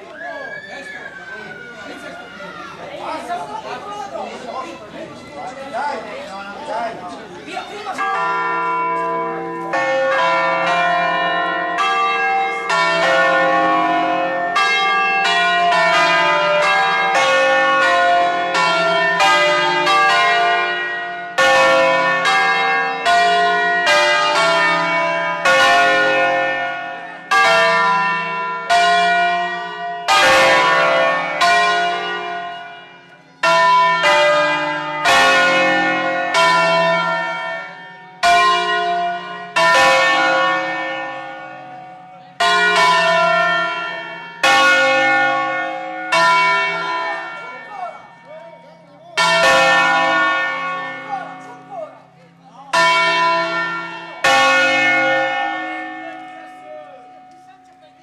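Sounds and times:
church bells ringing: 0:00.8 - 0:58.0.

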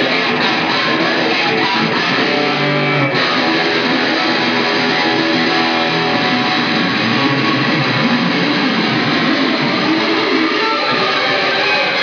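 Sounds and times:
distorted electric guitar: 0:00.0 - 0:12.0.

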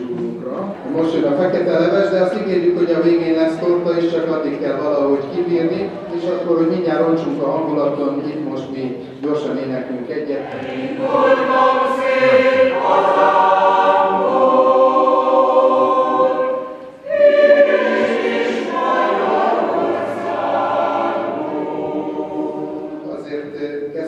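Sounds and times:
mixed choir singing: 0:10.3 - 0:23.6.

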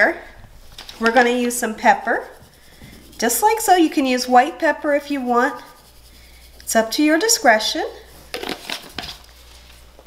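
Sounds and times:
pepper shaker shaking: 0:00.6 - 0:09.9.

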